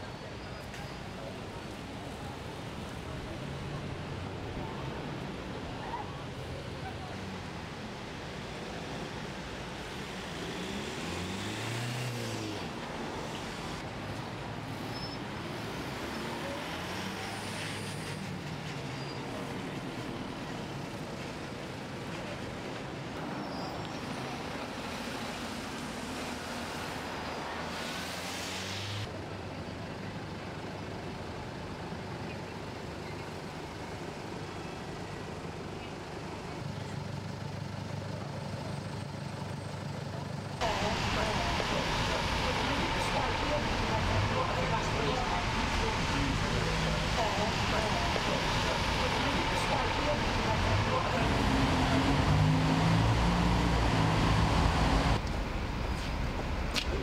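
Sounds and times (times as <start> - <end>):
engines in slow traffic: 0.0 - 57.0
steady rush of noise: 40.6 - 57.0.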